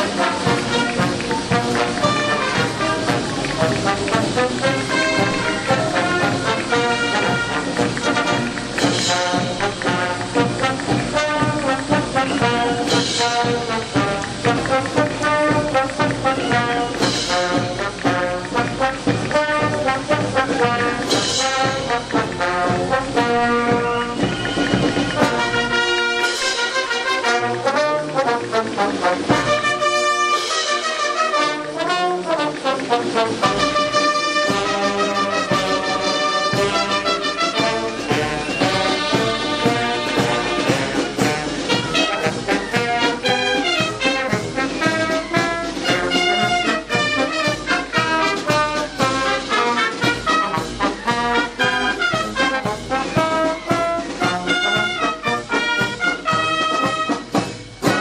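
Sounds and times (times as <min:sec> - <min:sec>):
marching brass band playing: 0:00.0 - 0:58.0.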